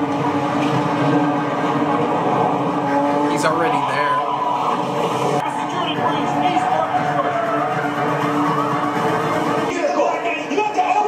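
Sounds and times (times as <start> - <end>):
sustained soundtrack drone: 0.0 - 9.8.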